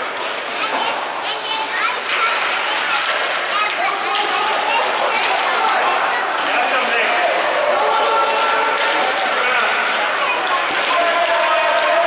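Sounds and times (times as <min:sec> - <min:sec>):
background noise: 0:00.0 - 0:12.0
children shouting: 0:00.7 - 0:12.0.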